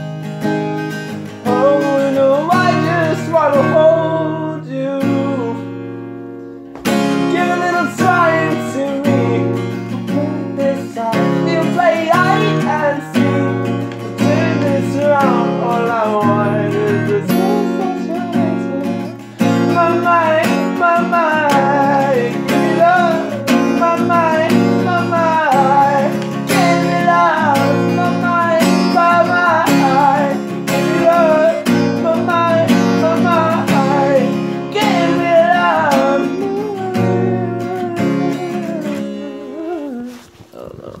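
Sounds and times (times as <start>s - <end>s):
strummed acoustic guitar: 0.0s - 40.7s
person singing: 1.3s - 5.7s, 7.1s - 41.0s.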